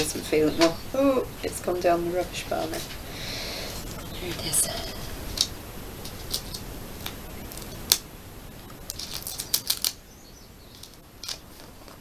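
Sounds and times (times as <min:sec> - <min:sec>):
sticker paper crackling: 0:05.3 - 0:08.0, 0:08.7 - 0:10.0.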